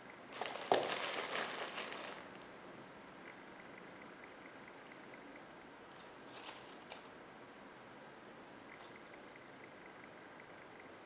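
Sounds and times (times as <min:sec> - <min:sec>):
room hiss: 0:00.0 - 0:11.0
pine twigs and foliage rustling: 0:00.3 - 0:02.5.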